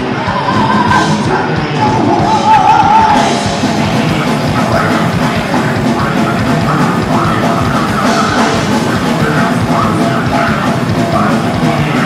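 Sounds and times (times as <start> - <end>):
drums: 0.0 - 12.0
electric guitars: 0.0 - 12.0
harsh yelled vocals: 0.0 - 12.0.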